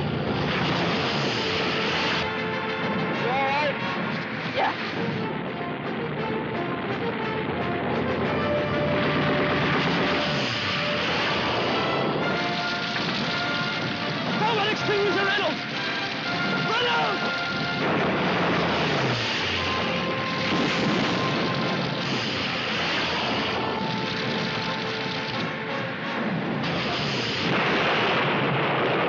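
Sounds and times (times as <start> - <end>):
aircraft engines roaring: 0.0 - 29.0
orchestral film score: 0.0 - 29.0
man shouting: 16.5 - 17.3.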